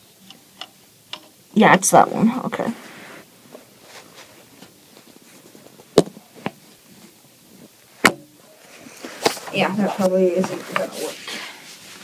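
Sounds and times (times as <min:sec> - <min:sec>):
faint rustling: 0:02.4 - 0:12.0.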